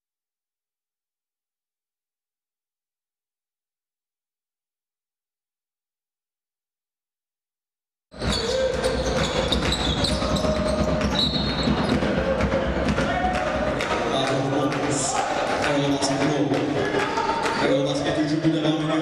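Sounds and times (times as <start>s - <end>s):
players calling out in echoing hall: 8.2s - 19.0s.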